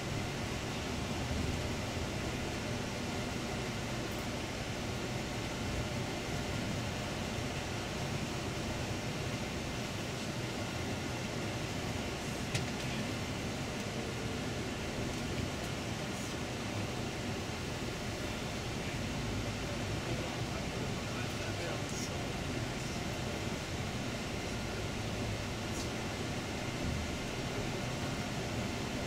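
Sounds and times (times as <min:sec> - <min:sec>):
bus engine and road noise: 0:00.0 - 0:29.0.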